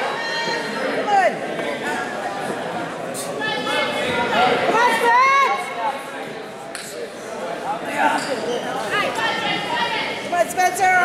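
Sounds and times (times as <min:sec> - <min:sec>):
spectators and coaches calling out: 0:00.0 - 0:11.0.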